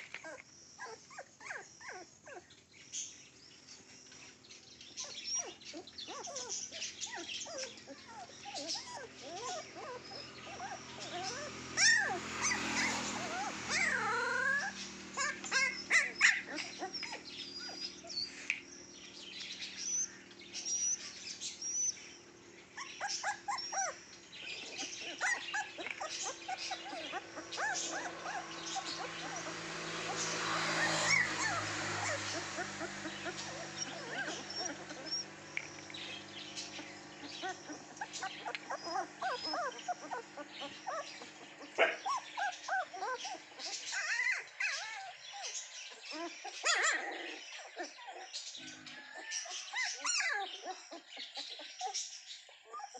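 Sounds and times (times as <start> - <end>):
puppy whining: 0.0 - 2.6, 4.9 - 52.9
puppies yipping: 0.0 - 3.1, 4.3 - 52.9.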